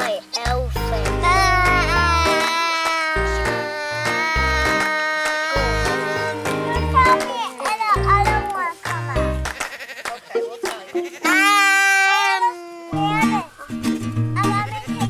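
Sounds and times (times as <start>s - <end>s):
acoustic music: 0.0s - 15.0s
goats bleating: 9.4s - 13.2s.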